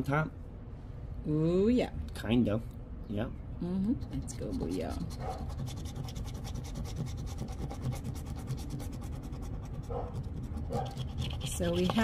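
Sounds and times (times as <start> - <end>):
coin scratching a ticket: 4.0 - 12.0.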